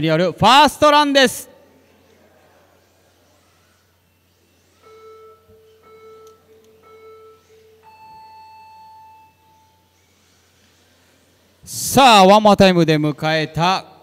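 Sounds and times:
short low beeps: 4.1s - 10.5s
long high-pitched beep: 4.7s - 10.2s.

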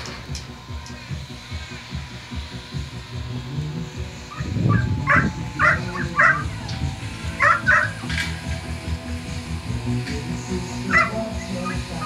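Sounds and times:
dog barking: 4.3s - 6.4s, 10.9s - 11.2s.

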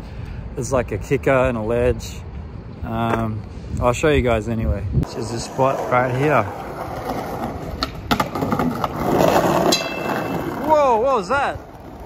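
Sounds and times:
skateboard scraping and rolling: 5.0s - 12.0s
skateboard clacking on ledge: 7.0s - 10.8s.

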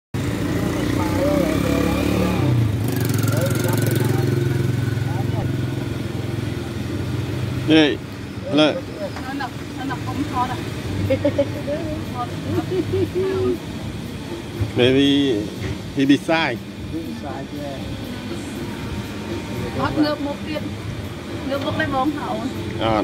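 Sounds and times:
motorbike engine running: 0.2s - 23.0s
voices: 0.2s - 23.0s.

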